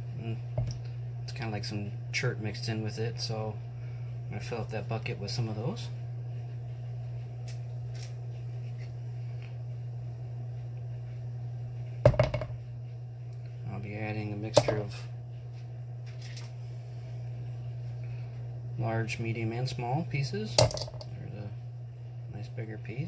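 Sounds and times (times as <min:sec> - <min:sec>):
steady low hum: 0:00.0 - 0:23.0
stones knocking into bucket: 0:12.1 - 0:12.5, 0:20.6 - 0:21.1.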